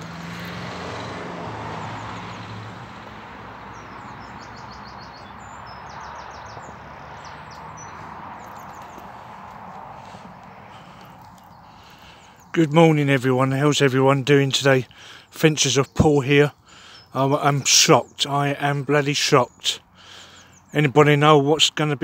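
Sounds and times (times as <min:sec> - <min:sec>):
traffic hum: 0:00.0 - 0:22.0
vehicle passing: 0:00.0 - 0:22.0
small birds chirping: 0:01.8 - 0:22.0.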